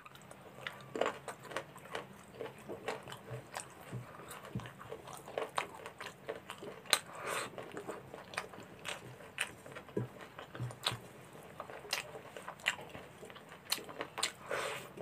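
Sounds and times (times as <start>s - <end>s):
wet chewing and smacking: 0.0s - 15.0s.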